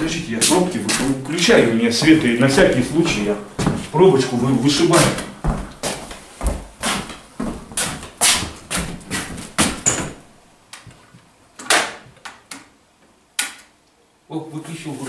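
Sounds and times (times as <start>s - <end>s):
footsteps on bare floor: 0.0s - 10.2s.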